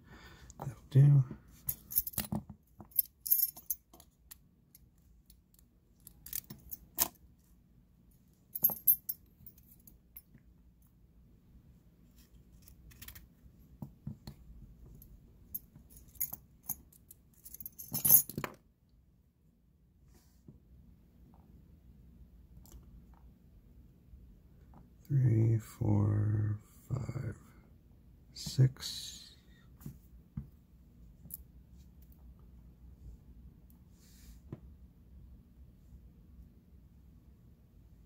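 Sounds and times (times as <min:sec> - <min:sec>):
metal lock parts clinking: 0:01.7 - 0:07.2, 0:08.6 - 0:10.0, 0:12.6 - 0:13.3, 0:15.6 - 0:18.6.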